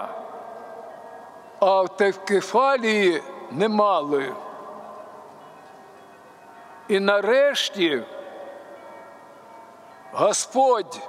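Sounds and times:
echo of public-address speech: 0.0s - 6.0s, 6.6s - 11.0s
faint open-air ambience: 0.0s - 11.0s
chime-like ringing tone: 3.2s - 11.0s.

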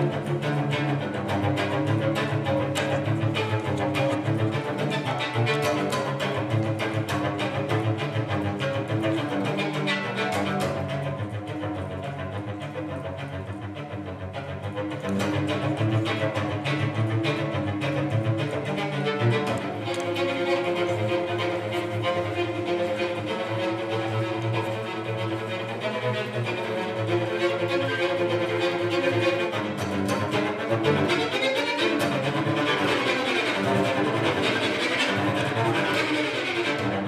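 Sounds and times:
bowed cello melody: 0.0s - 37.0s.

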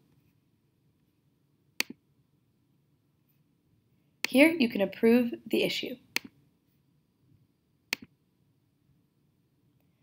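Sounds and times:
computer mouse click: 1.8s - 2.0s, 6.1s - 6.4s, 7.9s - 8.1s.

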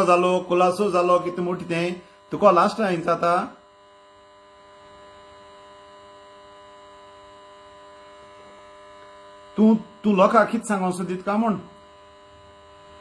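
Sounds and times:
man's voice: 0.0s - 3.5s, 9.6s - 11.7s
faint electrical hum: 0.0s - 13.0s.

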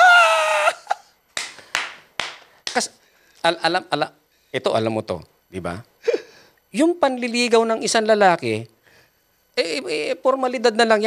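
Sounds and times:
men laughing hard: 0.0s - 1.2s
hand claps: 1.3s - 3.0s.

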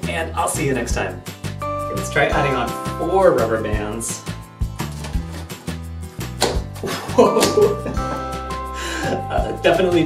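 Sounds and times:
background music: 0.0s - 10.0s
cardboard toy snapping: 6.3s - 6.8s.

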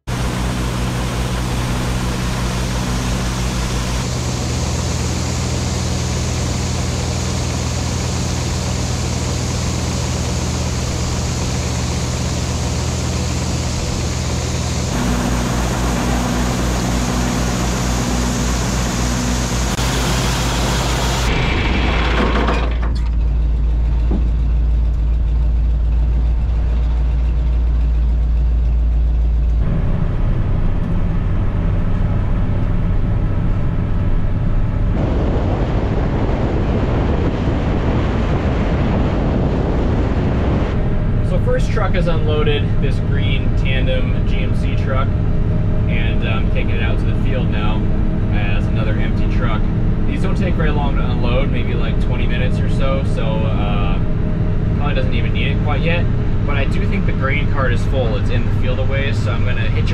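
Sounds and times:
tractor engine humming: 0.0s - 59.9s.

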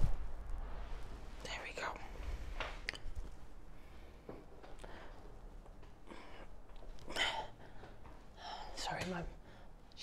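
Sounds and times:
low rumble: 0.0s - 2.6s
person whispering: 1.4s - 2.2s.

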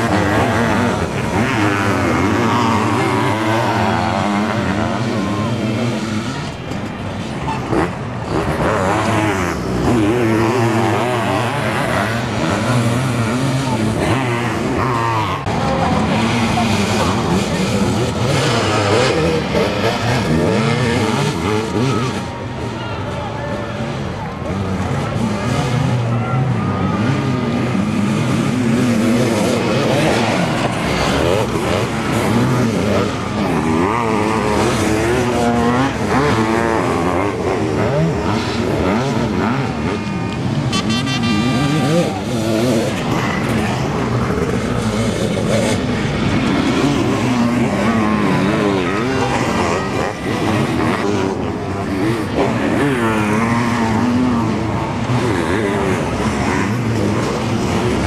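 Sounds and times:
motocross engines revving: 0.0s - 58.0s.

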